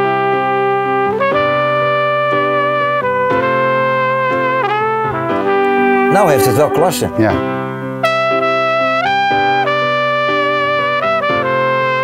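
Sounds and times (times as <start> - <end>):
flugelhorn playing slow melody: 0.0 - 12.0
piano: 0.0 - 12.0.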